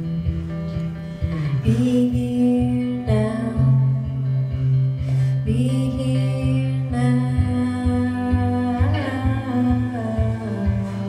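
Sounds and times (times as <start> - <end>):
acoustic guitar: 0.0 - 11.0
person singing long notes: 1.2 - 4.1, 5.5 - 11.0.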